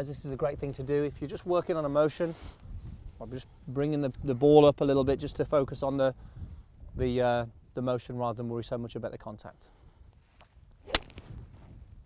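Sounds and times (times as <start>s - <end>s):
club swish: 10.8s - 11.3s
golf club striking ball: 10.8s - 11.3s.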